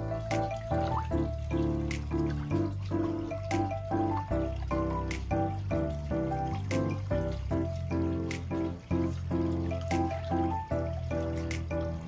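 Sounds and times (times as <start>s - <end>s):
light melody with bass and beat: 0.0s - 12.0s.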